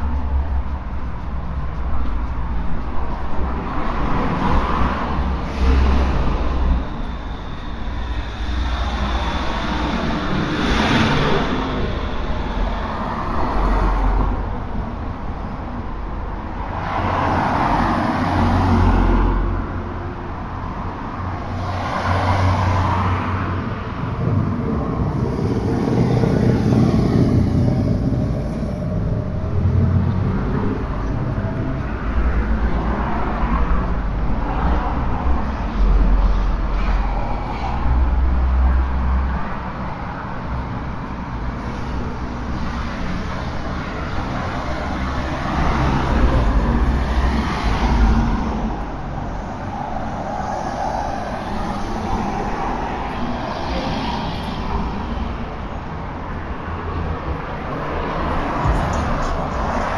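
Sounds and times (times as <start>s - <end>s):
road traffic passing: 0.0s - 59.9s.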